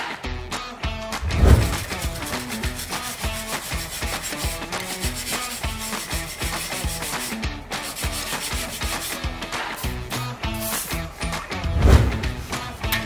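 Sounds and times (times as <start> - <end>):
background music: 0.0 - 13.0
wire brush scrubbing metal: 1.4 - 11.5.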